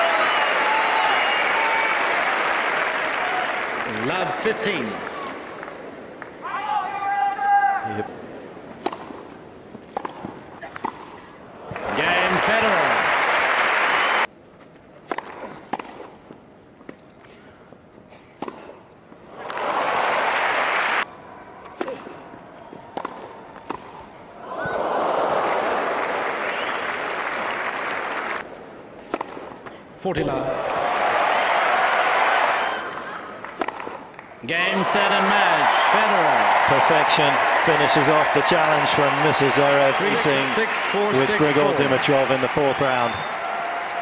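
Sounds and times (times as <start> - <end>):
crowd applause: 0.0 - 5.2, 11.7 - 14.3, 19.4 - 21.1, 24.4 - 28.4, 34.5 - 44.0
tennis ball struck by rackets: 8.8 - 9.2, 9.9 - 11.2, 15.0 - 16.1, 18.4 - 18.7, 22.9 - 24.0, 29.1 - 29.6, 33.6 - 34.0.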